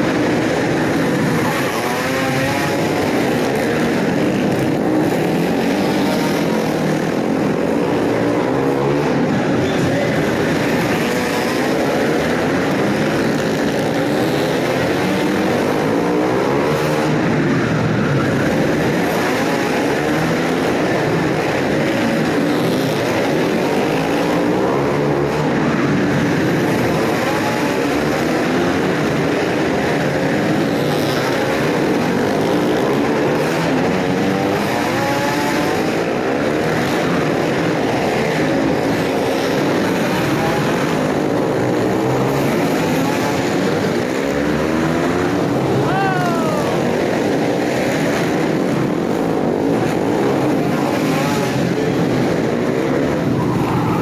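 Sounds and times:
racing motorcycle engines: 0.0s - 54.0s.

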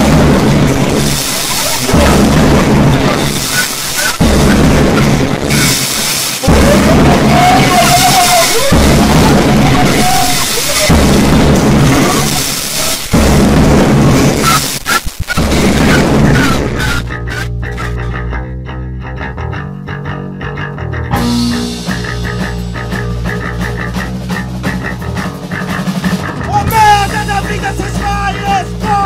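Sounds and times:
hardcore punk band playing: 0.0s - 29.0s.

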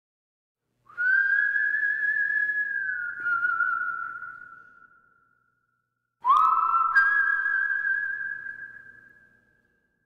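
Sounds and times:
high whistle-like musical note: 6.2s - 9.9s.

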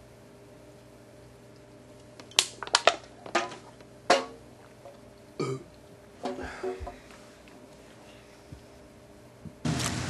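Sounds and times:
man burping loudly: 5.4s - 5.7s.

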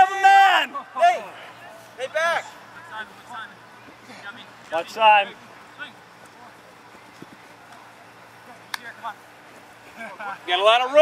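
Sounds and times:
distant shouts: 0.0s - 6.9s
steady low hiss: 0.0s - 11.0s.

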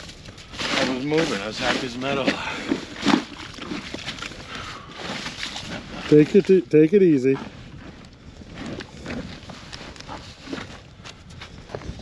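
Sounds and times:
crunching in wet snow: 0.0s - 6.6s.

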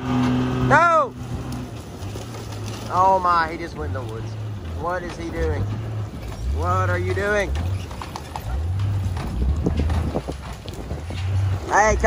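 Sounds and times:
truck engine labouring: 0.0s - 12.0s
branches cracking and snapping: 1.2s - 11.6s.

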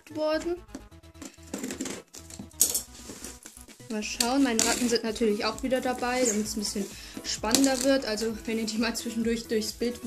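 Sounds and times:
rustling of tape and cardboard: 1.1s - 8.1s.

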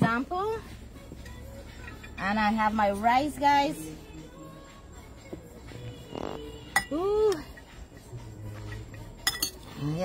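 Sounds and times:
spoon clinking against dish: 6.7s - 7.7s, 8.7s - 9.8s.

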